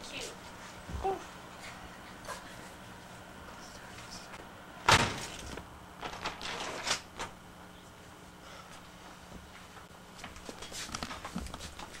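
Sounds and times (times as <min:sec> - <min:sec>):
front door banging shut: 0:04.8 - 0:05.4.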